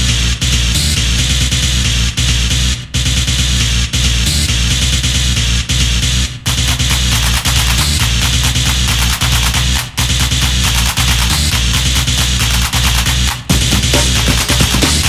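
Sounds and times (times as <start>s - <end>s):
techno music with fast beat: 0.0s - 15.0s.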